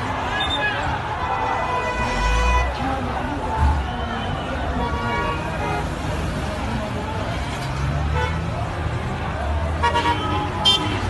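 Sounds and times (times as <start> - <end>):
scattered voices: 0.0 - 11.0
traffic rumble: 0.0 - 11.0.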